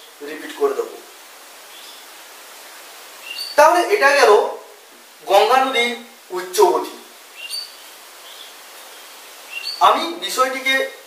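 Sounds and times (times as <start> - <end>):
faint background hiss: 0.0 - 11.0
small bird chirping: 1.6 - 2.2, 3.2 - 3.6, 7.3 - 10.0.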